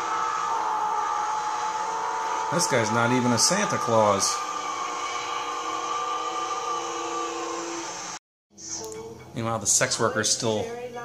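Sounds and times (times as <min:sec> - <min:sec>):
drone of held tones: 0:00.0 - 0:08.2
film soundtrack hiss: 0:00.0 - 0:11.0.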